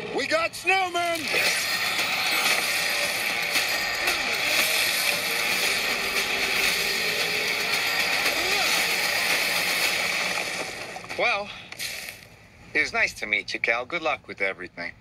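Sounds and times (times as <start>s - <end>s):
action soundtrack effects noise: 1.2s - 11.3s.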